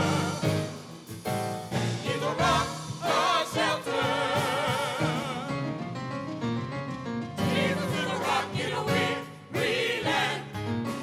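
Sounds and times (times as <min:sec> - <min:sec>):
group singing gospel: 0:00.0 - 0:00.9, 0:01.7 - 0:05.8, 0:07.4 - 0:11.0.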